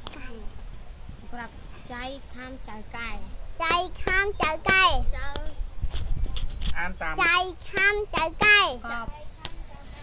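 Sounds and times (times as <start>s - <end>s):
children chanting syllables: 2.7s - 5.5s, 7.2s - 9.1s.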